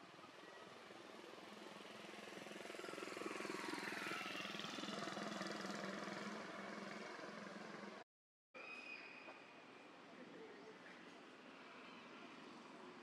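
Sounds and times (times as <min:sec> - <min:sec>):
vehicle engine passing by: 0:01.3 - 0:08.0.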